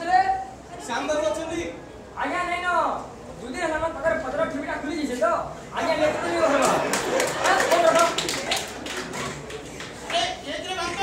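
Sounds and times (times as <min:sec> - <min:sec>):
man speaking in large room: 0:00.0 - 0:11.0.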